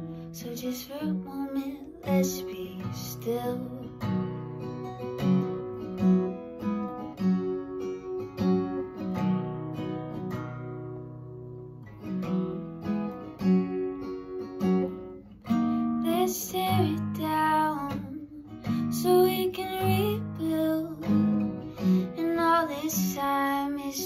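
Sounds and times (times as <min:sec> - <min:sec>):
acoustic guitar strumming: 0:00.0 - 0:24.0.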